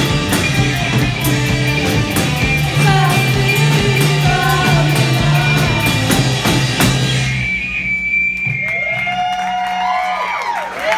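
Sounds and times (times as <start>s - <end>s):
drum hits: 0.0s - 9.0s
rock band playing: 0.0s - 10.0s
crowd whooping: 2.8s - 10.9s.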